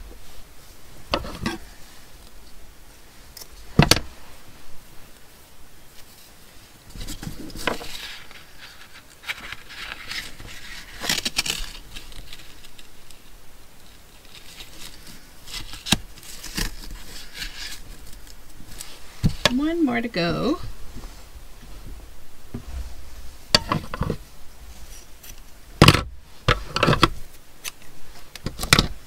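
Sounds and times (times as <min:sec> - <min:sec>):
rustling and scraping of lace and paper: 0:05.9 - 0:19.6, 0:22.6 - 0:25.5.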